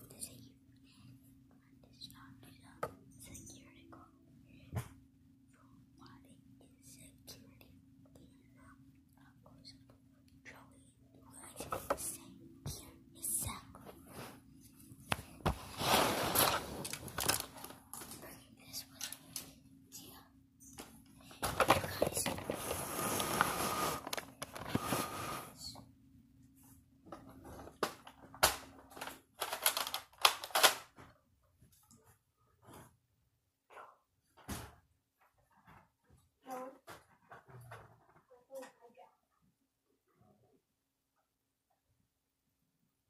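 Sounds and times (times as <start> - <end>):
whispering: 0.0 - 4.9, 5.5 - 14.3, 18.0 - 22.5, 25.5 - 25.9.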